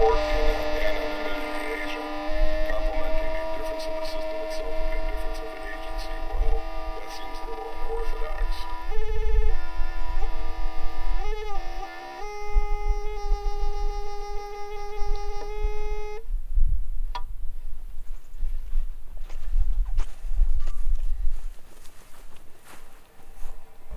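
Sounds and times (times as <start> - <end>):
buzzy sustained tone: 0.0 - 16.3.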